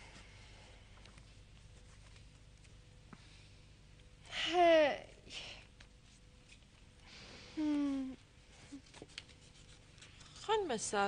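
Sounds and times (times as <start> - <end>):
faint scratching: 8.5 - 10.8.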